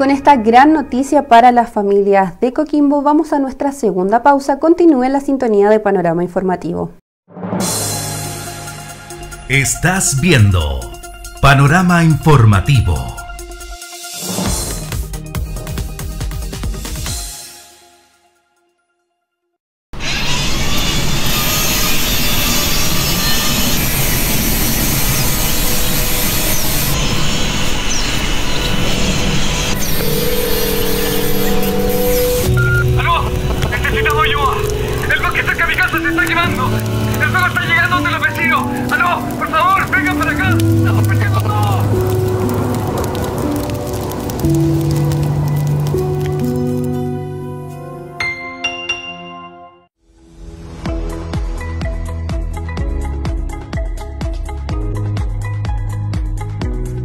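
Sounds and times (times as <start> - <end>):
person speaking: 9.5 - 13.3, 33.0 - 41.9
angle grinder cutting metal: 20.0 - 32.5.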